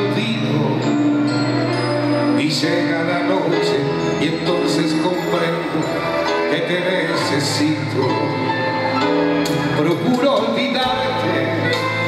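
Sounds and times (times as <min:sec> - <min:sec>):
keyboard chords: 0:00.0 - 0:12.0.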